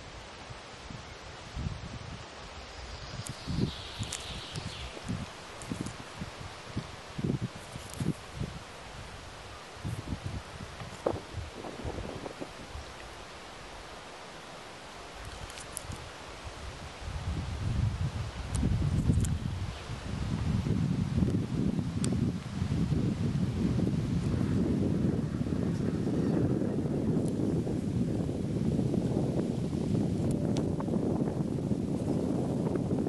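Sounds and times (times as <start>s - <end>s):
wind buffeting microphone: 0.0s - 14.1s, 15.1s - 33.0s.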